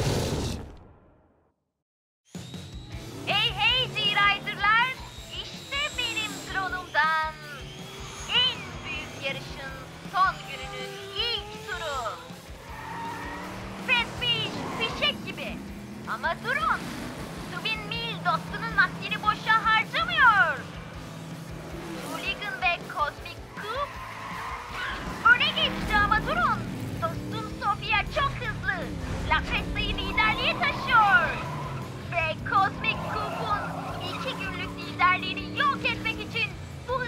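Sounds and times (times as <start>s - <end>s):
cartoon race car engines: 2.3s - 37.0s.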